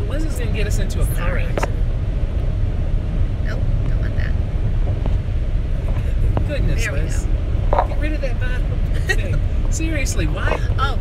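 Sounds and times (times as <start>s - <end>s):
car cabin road rumble: 0.0s - 11.0s.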